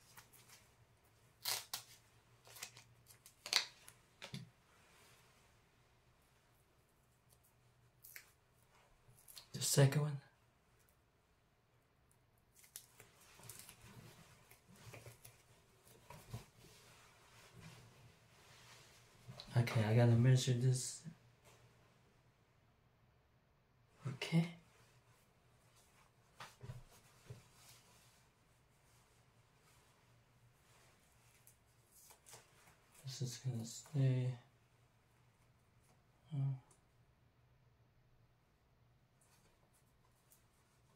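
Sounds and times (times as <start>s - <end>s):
velcro strip pressed on: 1.4s - 3.8s
fabric rustling: 12.7s - 19.4s, 24.7s - 33.0s.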